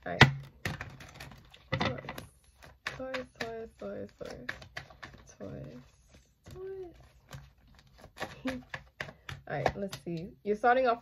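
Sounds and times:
woman speaking: 0.0 - 0.3, 1.8 - 4.6, 5.2 - 7.1, 9.4 - 11.0.

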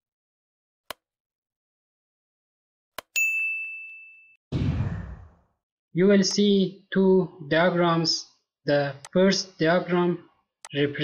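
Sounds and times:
bright bell ding: 3.2 - 4.4.

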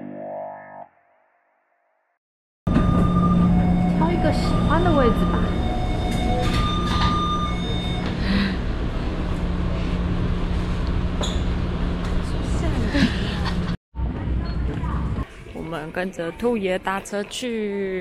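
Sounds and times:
metro train running rumble: 2.7 - 15.2.

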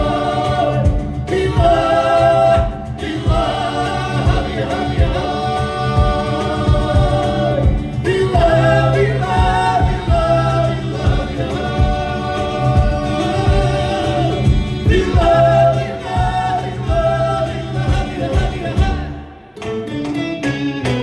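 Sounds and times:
vocal ensemble singing in harmony: 0.0 - 19.6.

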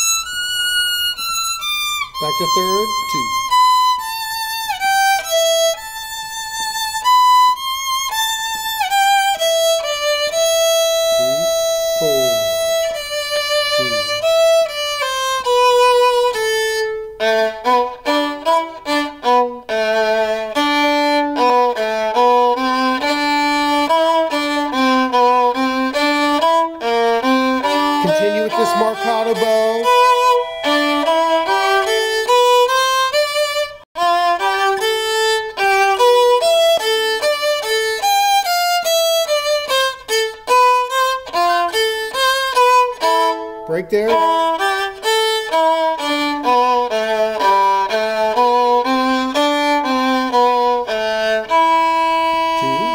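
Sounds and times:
solo violin playing: 0.0 - 52.9.

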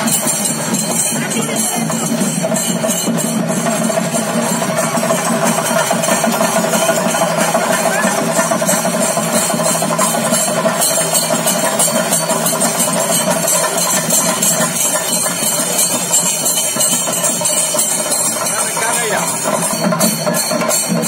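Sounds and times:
fast drumming: 0.0 - 21.0
small hand cymbals clashing: 0.0 - 21.0.

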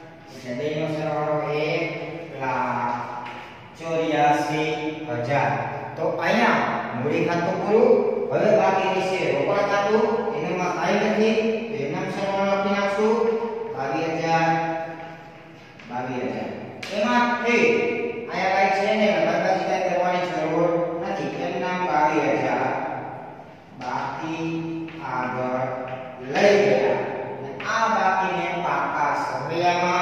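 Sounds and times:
man chanting: 23.8 - 30.0
man speaking in sing-song voice: 23.8 - 30.0.

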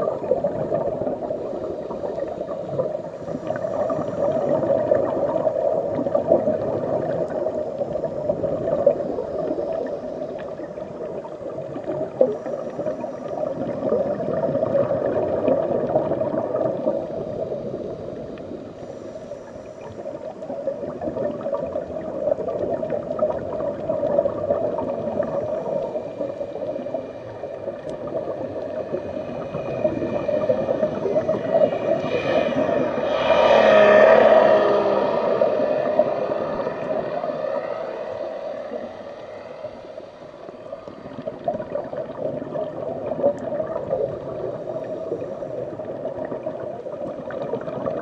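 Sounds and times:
underwater bubbling and gurgling: 0.0 - 48.0.

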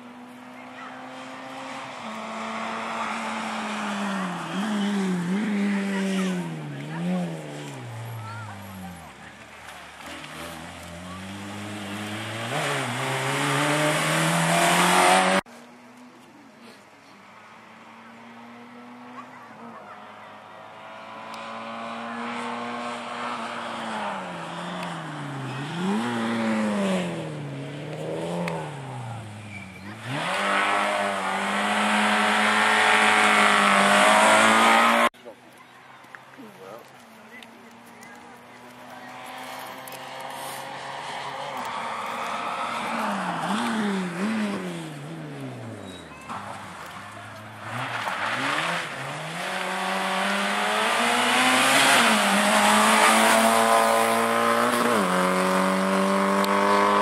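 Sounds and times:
rally car engines revving: 0.0 - 15.5, 17.2 - 35.2, 36.2 - 57.0.

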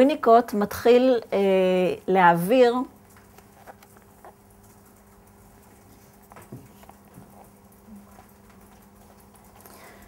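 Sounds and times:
steady low hum: 0.0 - 10.0
paperback book handled and opened: 3.4 - 4.4.

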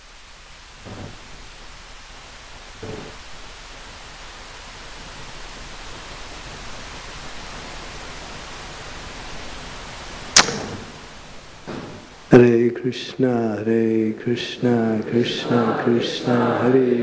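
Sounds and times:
room noise hiss: 0.0 - 17.0.

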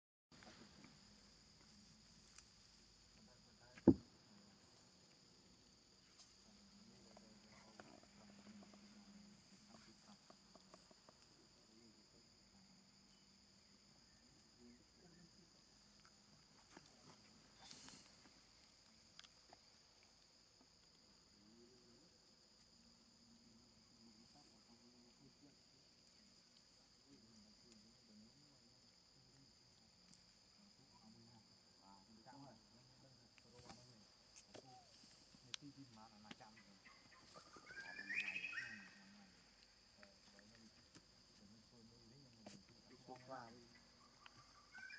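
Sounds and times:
insects droning: 0.3 - 44.9
high chirping animal calls: 36.8 - 39.2.

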